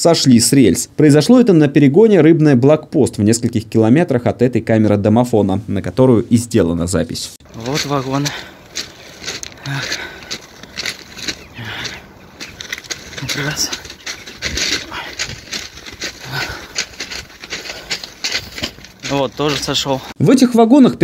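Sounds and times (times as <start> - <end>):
man's voice: 0.0 - 8.5, 13.2 - 13.9, 19.0 - 21.0
footsteps crunching on ballast stones: 7.4 - 20.2.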